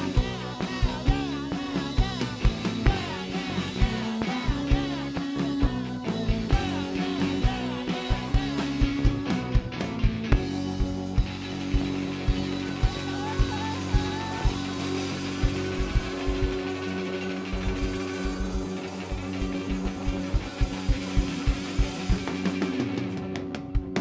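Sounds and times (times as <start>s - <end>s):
drum kit beat: 0.0s - 24.0s
electric guitars and keyboard chords: 0.0s - 24.0s
guitar lead line: 0.0s - 24.0s.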